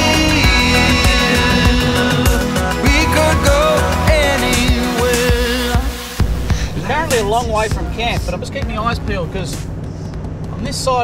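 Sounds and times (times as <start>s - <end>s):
engine drone inside vehicle: 6.2s - 11.0s.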